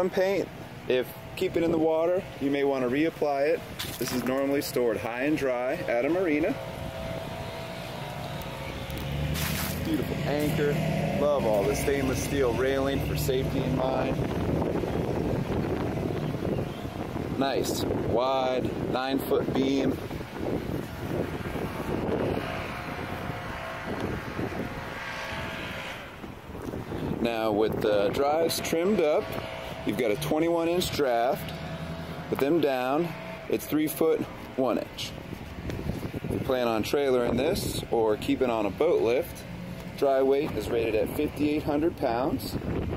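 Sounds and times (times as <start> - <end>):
engine drone: 0.2 - 42.9
wind rumbling on microphone: 3.1 - 42.9.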